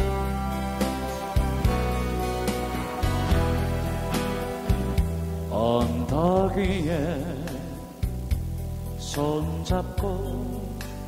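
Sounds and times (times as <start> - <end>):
backing track with bass beat: 0.0 - 11.0
person singing with vibrato: 2.7 - 8.1, 9.0 - 11.0.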